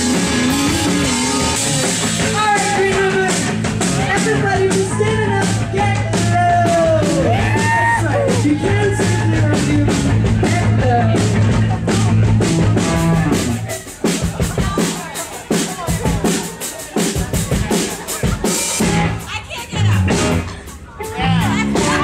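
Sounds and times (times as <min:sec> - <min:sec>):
drums playing: 0:00.0 - 0:22.0
live band playing: 0:00.0 - 0:22.0.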